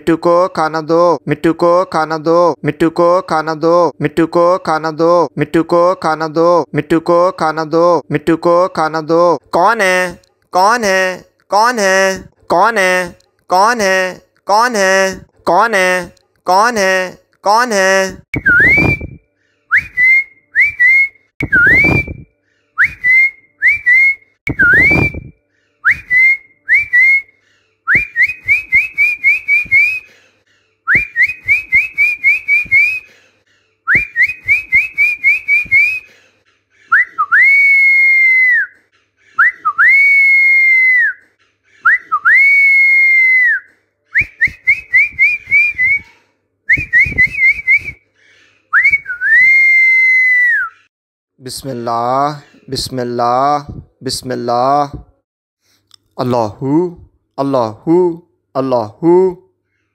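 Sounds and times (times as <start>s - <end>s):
person whistling: 18.4s - 27.3s, 27.9s - 30.1s, 30.9s - 33.1s, 33.9s - 36.1s, 36.9s - 38.8s, 39.4s - 41.2s, 41.8s - 48.0s, 48.7s - 50.9s.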